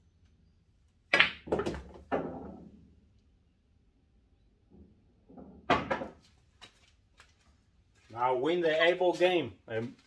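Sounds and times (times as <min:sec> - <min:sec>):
pool ball knocking balls: 0:01.1 - 0:02.8, 0:05.3 - 0:06.2
pool ball rolling rumble: 0:01.5 - 0:02.8.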